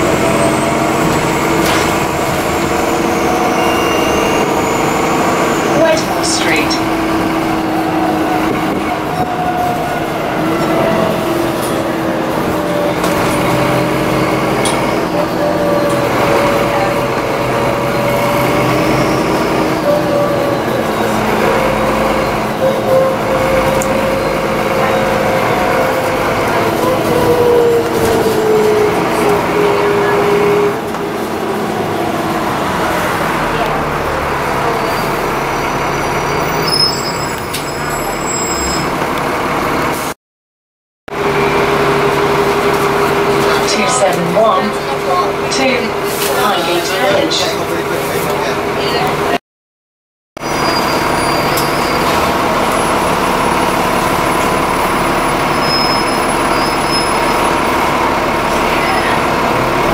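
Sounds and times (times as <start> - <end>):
bus engine rumble: 0.0 - 40.2, 41.1 - 49.4, 50.4 - 59.9.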